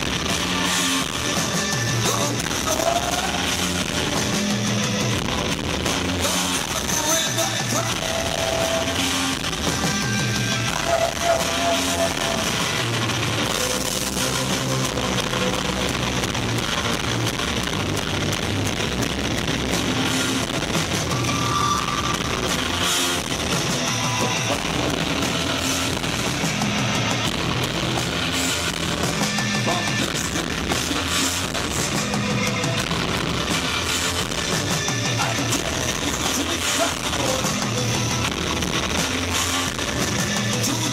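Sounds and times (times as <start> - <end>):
live rock band playing: 0.0 - 40.9.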